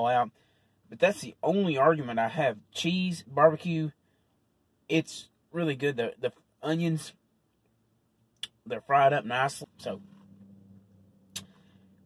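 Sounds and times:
low hum in vehicle cabin: 0:00.0 - 0:12.0.

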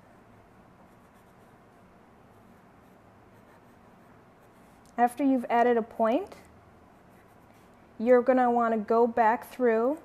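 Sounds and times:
pencil scratching on paper: 0:00.0 - 0:04.8, 0:07.0 - 0:07.8
low room hiss: 0:00.0 - 0:10.0.

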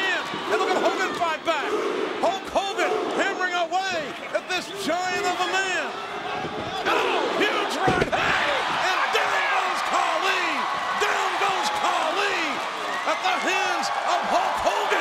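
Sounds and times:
people shouting: 0:00.0 - 0:03.4, 0:06.1 - 0:15.0.

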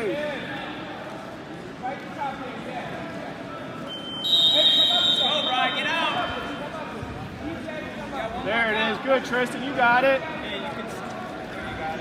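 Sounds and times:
shrill whistle blast: 0:03.9 - 0:06.5.

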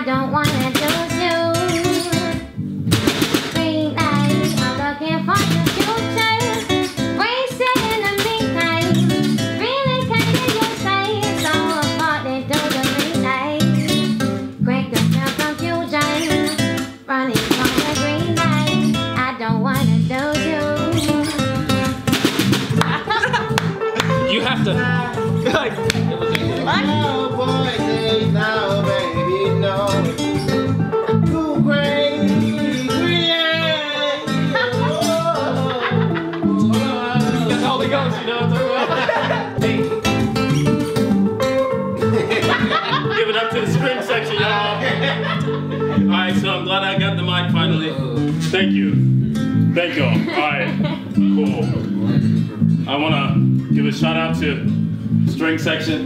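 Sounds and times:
acoustic guitar: 0:00.0 - 0:56.0
electric guitars: 0:00.0 - 0:56.0.

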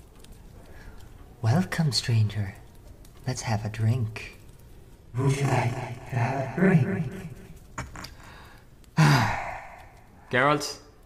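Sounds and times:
person sighing: 0:07.8 - 0:10.1.

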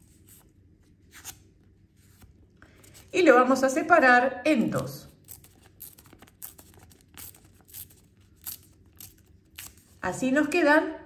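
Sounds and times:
paper being torn: 0:05.1 - 0:10.0.

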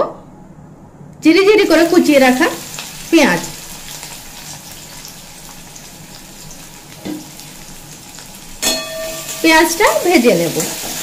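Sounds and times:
onions sizzling in hot oil: 0:01.6 - 0:11.0.

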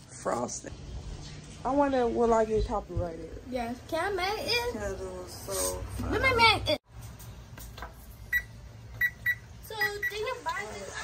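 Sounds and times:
oven touchpad beeps: 0:08.3 - 0:10.3.

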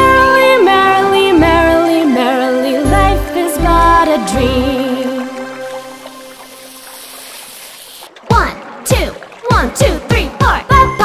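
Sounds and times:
children's song music: 0:00.0 - 0:07.0, 0:08.1 - 0:11.0
cartoon water rushing: 0:03.8 - 0:11.0.

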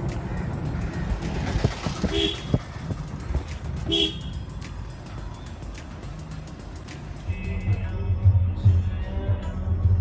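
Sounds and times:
car engine and road rumble: 0:00.0 - 0:10.0
vehicle horn toot: 0:02.1 - 0:02.6, 0:03.9 - 0:04.4.

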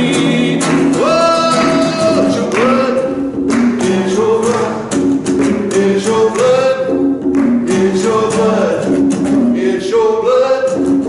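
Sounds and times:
man singing gospel song: 0:00.0 - 0:11.0
strummed acoustic guitar: 0:00.0 - 0:11.0.

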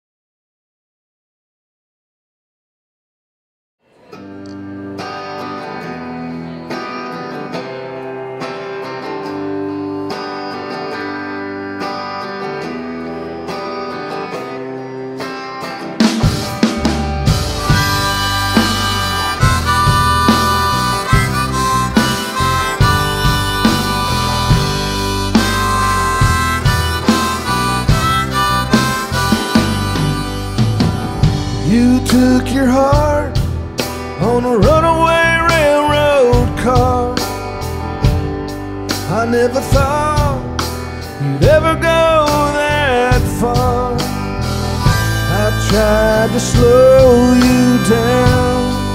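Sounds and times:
guitar: 0:03.8 - 0:48.9
drums with driving beat: 0:15.8 - 0:48.9
harmonica: 0:16.2 - 0:48.9.

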